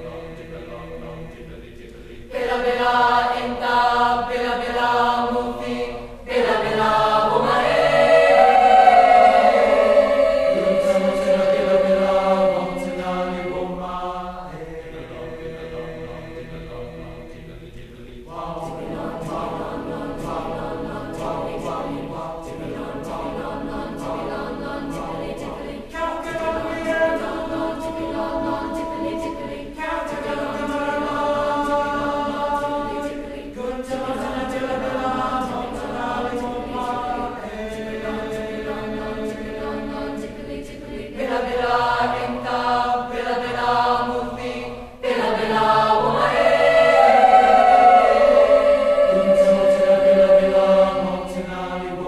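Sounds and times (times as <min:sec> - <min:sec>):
choir singing sustained chords: 0:00.0 - 0:52.0.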